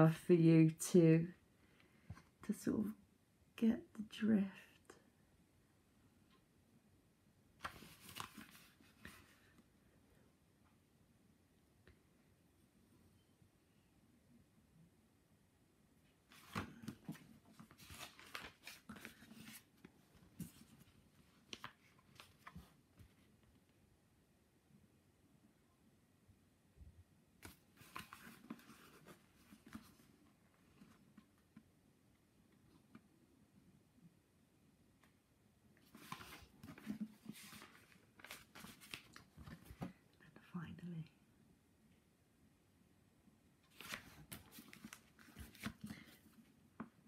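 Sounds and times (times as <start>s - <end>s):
book pages turning: 7.6s - 9.6s, 16.3s - 23.2s, 27.4s - 31.0s, 35.8s - 40.0s, 43.7s - 46.4s
soft low voice: 40.1s - 41.3s.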